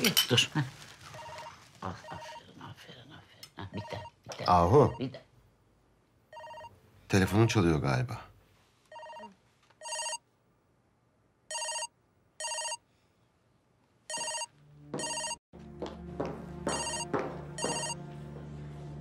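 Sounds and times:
phone ringtone double rings: 9.0s - 10.2s, 11.5s - 12.8s, 14.1s - 15.4s, 17.6s - 18.0s.

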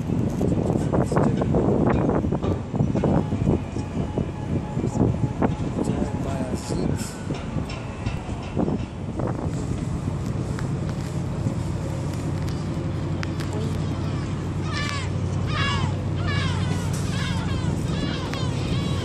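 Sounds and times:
distant traffic rumble: 0.0s - 19.0s
wind: 0.0s - 19.0s
indistinct voices: 13.4s - 19.0s.

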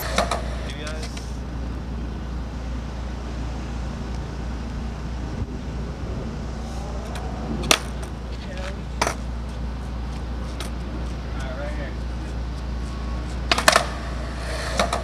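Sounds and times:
steady low rumble: 0.0s - 15.0s
faint voices: 6.6s - 9.0s.

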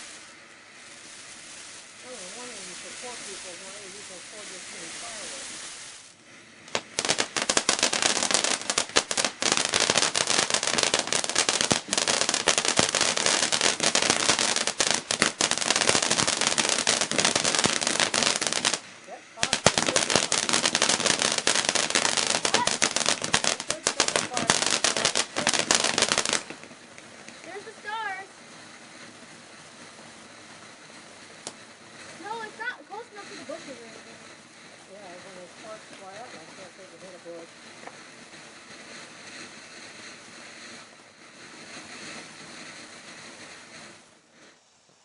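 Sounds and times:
firework fountain crackling: 0.0s - 45.0s.

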